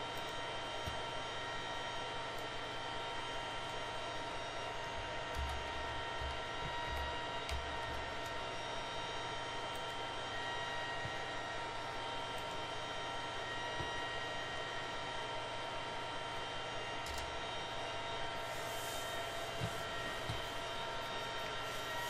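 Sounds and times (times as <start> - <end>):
background hum and hiss: 0.0 - 22.0
faint whining tones: 0.0 - 22.0.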